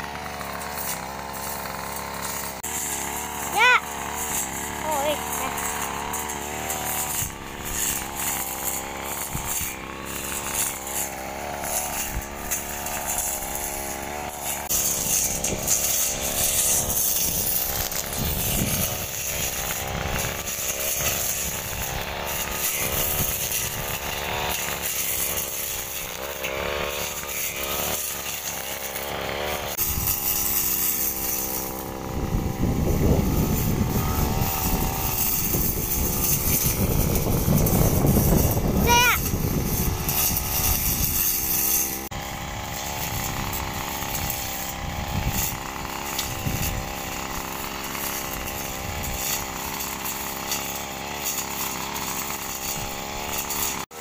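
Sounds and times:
brush cutter engine cutting grass: 0.0s - 54.0s.

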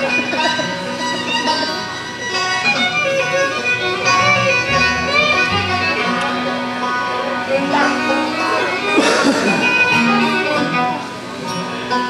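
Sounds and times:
fiddle bowed sliding notes: 0.0s - 9.0s, 9.6s - 12.0s
strummed acoustic guitars: 0.0s - 12.0s.

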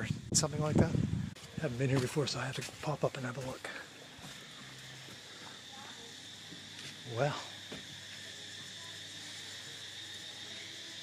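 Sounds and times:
insects chirring: 0.0s - 11.0s.

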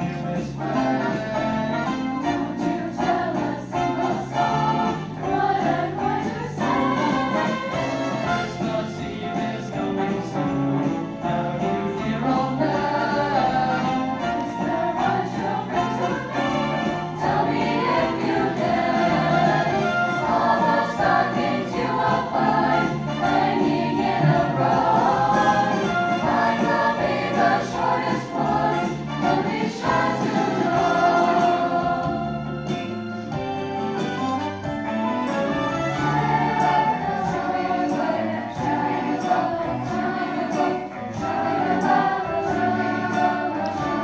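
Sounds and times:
mixed choir singing: 0.0s - 10.4s, 11.2s - 33.1s, 35.5s - 44.0s.

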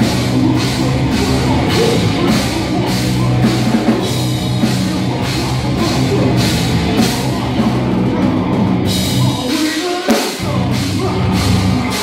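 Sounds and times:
distorted electric guitars and bass: 0.0s - 9.6s, 10.4s - 12.0s
drum kit: 0.0s - 12.0s.

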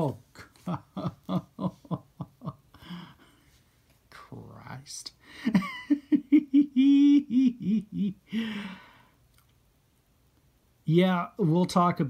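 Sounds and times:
man laughing: 0.0s - 3.4s, 5.3s - 8.7s.

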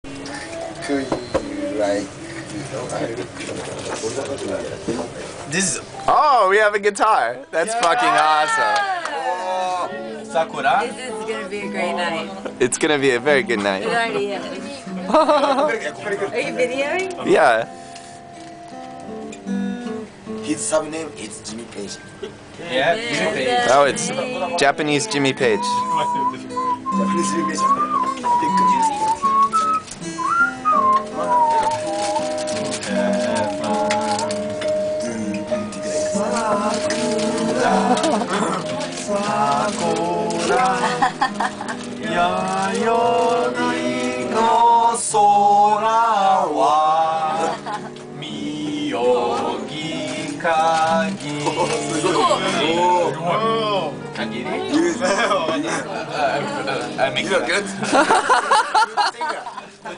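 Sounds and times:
indistinct talk of people: 0.0s - 59.9s
acoustic guitar picking: 0.1s - 58.8s
person whistling a melody: 25.6s - 32.4s.

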